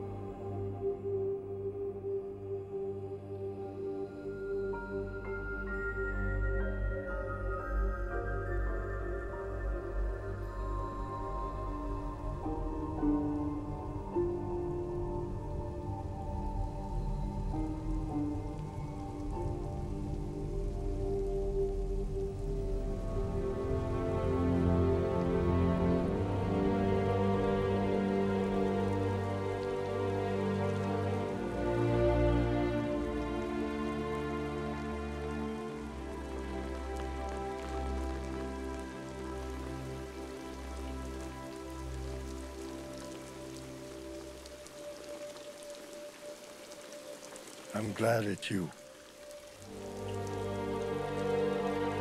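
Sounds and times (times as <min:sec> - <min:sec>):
film score with held notes: 0:00.0 - 0:52.0
low sustained orchestral chords: 0:00.0 - 0:52.0
heavy rain falling: 0:10.9 - 0:52.0.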